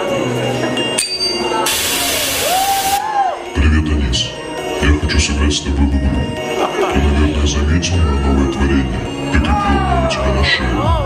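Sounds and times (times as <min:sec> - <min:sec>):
loud hiss of noise: 0:01.6 - 0:03.1.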